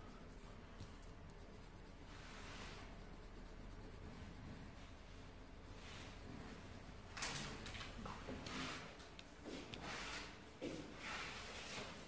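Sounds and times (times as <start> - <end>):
pen scratching on paper: 0.0 - 7.6.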